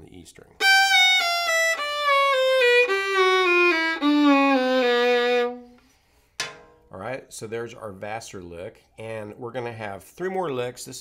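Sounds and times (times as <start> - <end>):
solo fiddle playing: 0.6 - 5.8.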